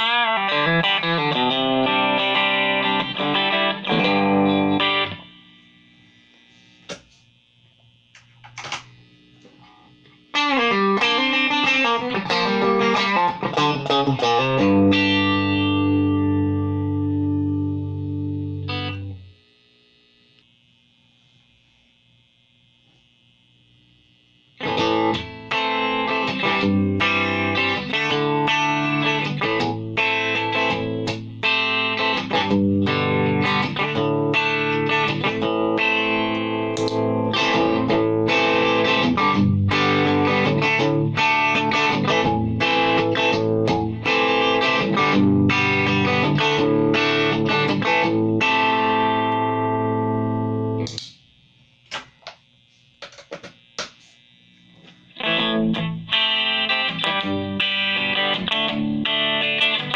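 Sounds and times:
electric guitar chords and notes: 0.0s - 20.7s, 24.6s - 51.4s, 52.0s - 59.9s.

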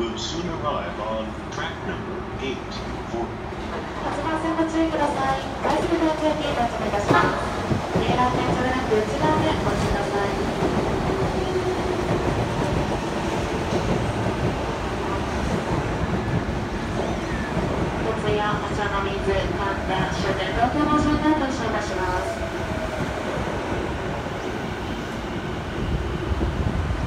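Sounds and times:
train wheels rolling on rails: 3.6s - 27.0s.

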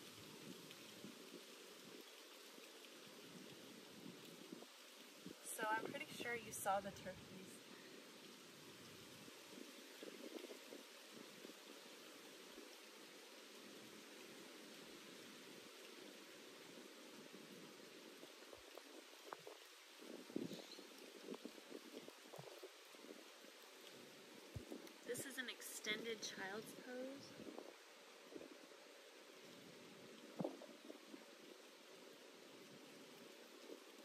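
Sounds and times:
faint rustles: 0.0s - 34.0s.

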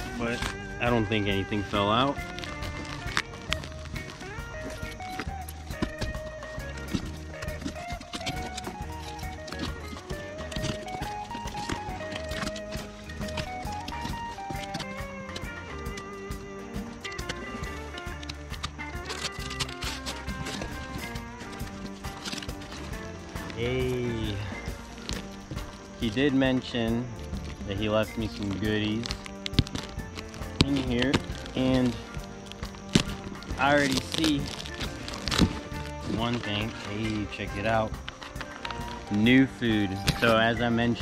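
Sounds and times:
background music with bass line: 0.0s - 41.0s.

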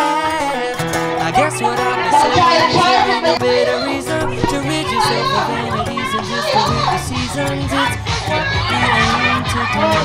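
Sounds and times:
background music: 0.0s - 10.0s
women laughing and calling out: 1.4s - 10.0s.

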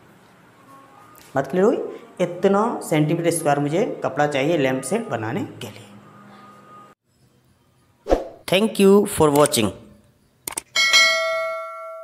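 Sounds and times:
bell ding: 10.8s - 12.0s.

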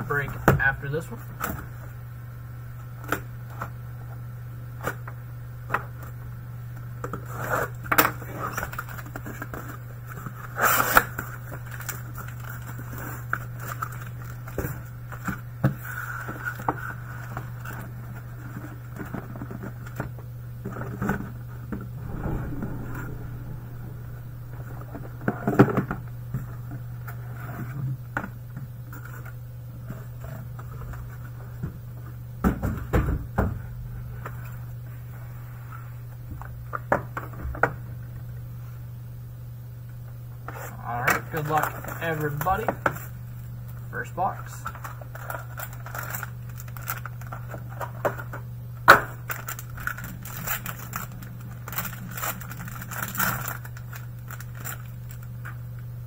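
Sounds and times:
steady low hum: 21.8s - 27.3s.

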